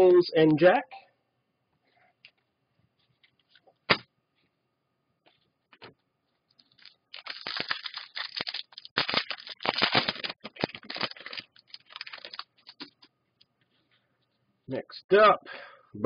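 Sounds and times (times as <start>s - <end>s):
card packaging crinkling and rustling: 6.5s - 13.1s.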